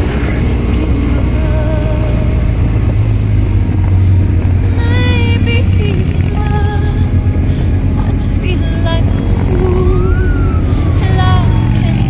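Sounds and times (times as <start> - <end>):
motorcycle engines rumbling: 0.0 - 12.0
wavering melodic line: 0.0 - 12.0.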